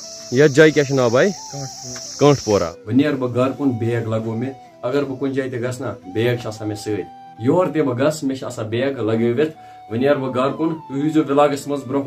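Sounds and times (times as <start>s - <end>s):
crickets chirring: 0.0s - 5.8s
man talking: 0.3s - 12.0s.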